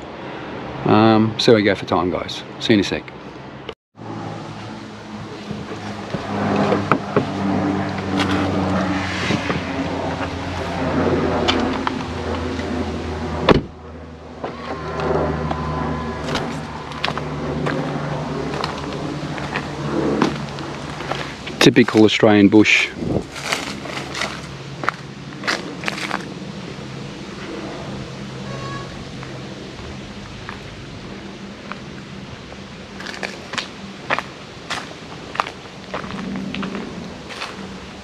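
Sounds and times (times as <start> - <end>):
car engine hum: 3.4 - 22.0, 23.0 - 38.0.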